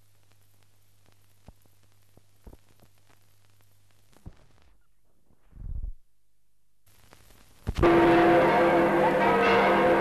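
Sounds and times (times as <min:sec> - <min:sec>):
church bells ringing: 0:07.8 - 0:10.0.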